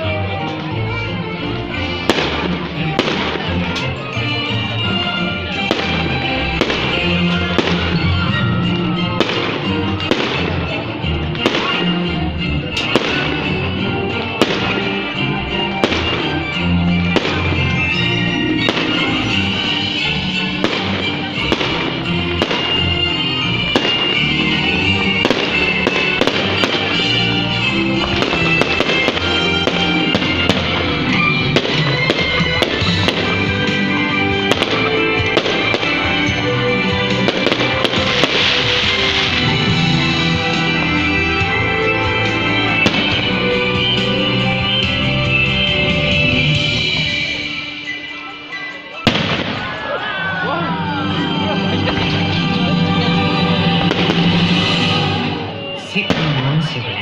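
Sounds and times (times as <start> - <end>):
loud music: 0.0 - 57.0
fireworks bangs and crackles: 0.2 - 50.0, 50.6 - 57.0.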